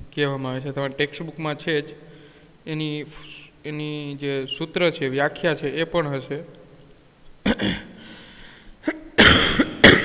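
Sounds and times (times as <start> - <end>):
man coughing: 7.4 - 8.0, 8.8 - 10.0.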